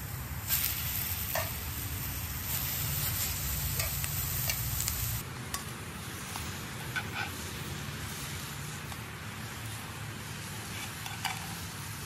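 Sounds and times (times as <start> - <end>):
chicken sizzling in a skillet: 0.0 - 12.0.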